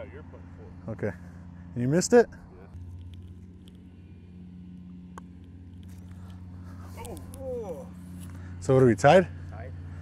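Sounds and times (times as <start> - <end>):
distant small engine humming: 0.0 - 10.0.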